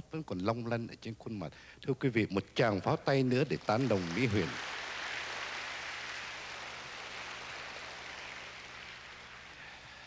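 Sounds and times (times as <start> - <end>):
audience applause: 3.3 - 10.0.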